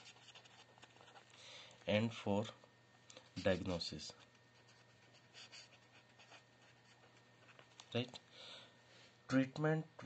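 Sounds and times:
marker pen writing on paper: 0.0 - 1.3, 4.6 - 7.8.

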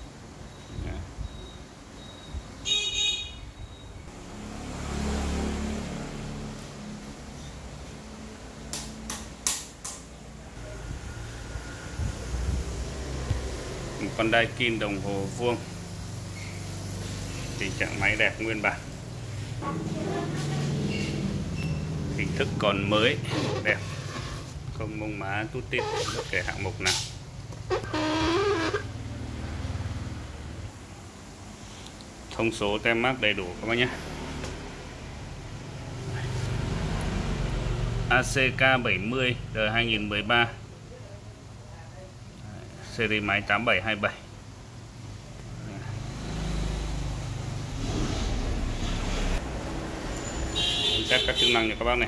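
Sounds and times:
electronic beep: 0.5 - 2.5, 3.6 - 4.0.

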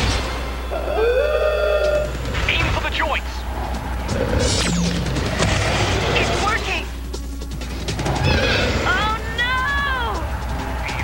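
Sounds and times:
dramatic music: 0.0 - 11.0
animal cry: 8.0 - 9.1.

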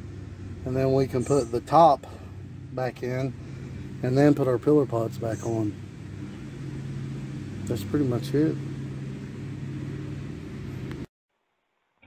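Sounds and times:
low machine drone: 0.0 - 11.1.

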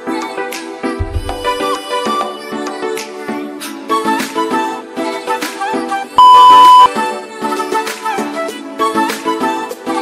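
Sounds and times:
background music with a beat: 0.0 - 10.0
electronic timer beep: 6.2 - 6.9.

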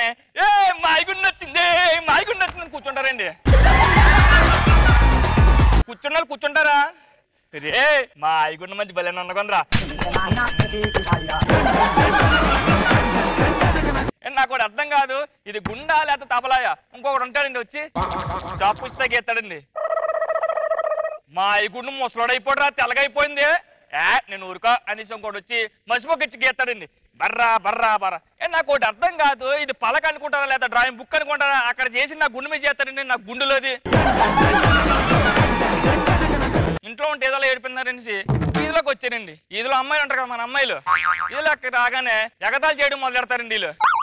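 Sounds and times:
man talking: 0.0 - 3.5, 5.8 - 11.5, 36.8 - 43.8
wavering warbling tone: 43.8 - 44.0.

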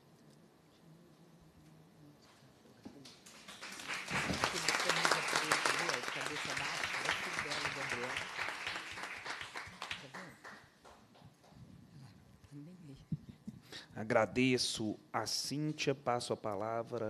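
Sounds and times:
audience applause: 3.3 - 10.7.

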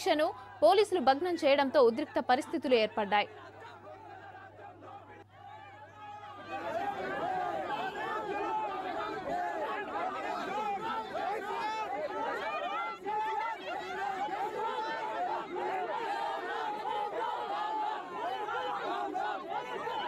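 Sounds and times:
crowd talking: 0.0 - 20.0.

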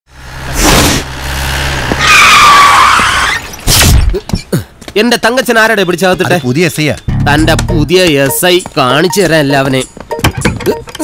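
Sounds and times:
tyres squealing: 2.0 - 4.7.

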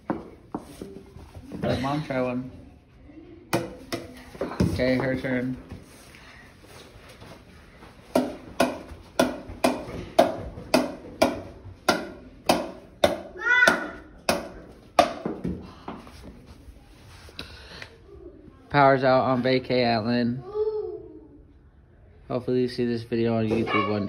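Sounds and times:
ball bouncing off wooden paddle: 8.1 - 15.6.

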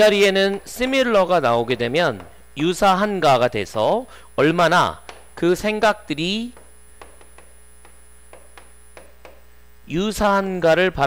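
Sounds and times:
electrical mains hum: 0.0 - 11.0
pen tapping on screen: 5.0 - 5.5, 6.5 - 9.5.

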